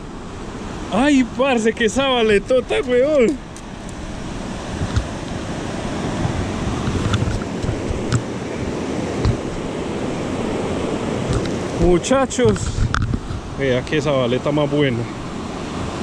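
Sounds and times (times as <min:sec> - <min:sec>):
river rapids rushing: 0:00.0 - 0:16.0.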